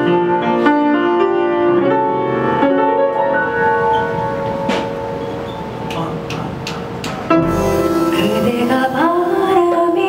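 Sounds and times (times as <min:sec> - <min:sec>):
light drum kit strokes: 0:04.4 - 0:10.0
piano chord ringing: 0:07.3 - 0:09.9.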